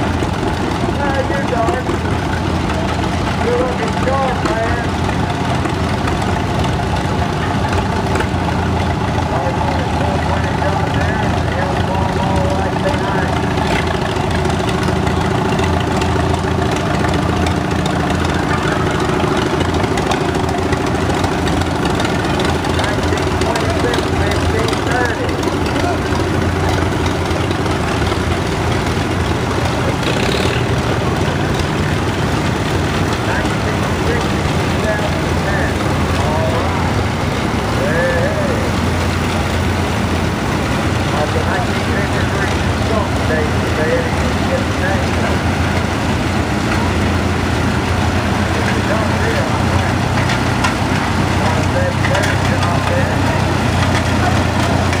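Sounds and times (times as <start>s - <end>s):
tractor engines idling: 0.0s - 55.0s.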